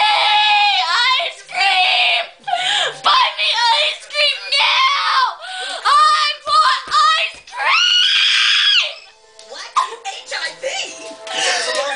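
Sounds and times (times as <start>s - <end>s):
girl screaming: 7.6s - 9.1s.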